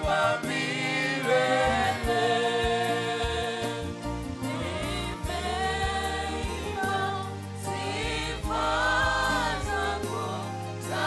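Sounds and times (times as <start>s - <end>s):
keyboard accompaniment with bass: 0.0s - 11.0s
women's choir singing in harmony: 0.0s - 11.0s.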